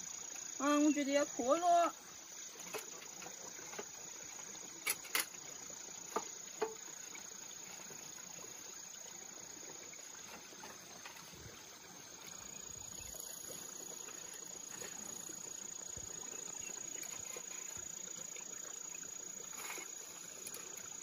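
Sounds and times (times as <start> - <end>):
field insects chirring: 0.0 - 21.0.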